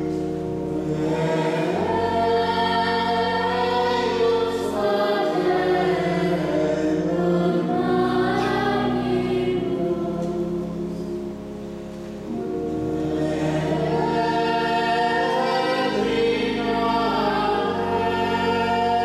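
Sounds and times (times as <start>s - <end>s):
church choir singing: 0.0s - 19.0s.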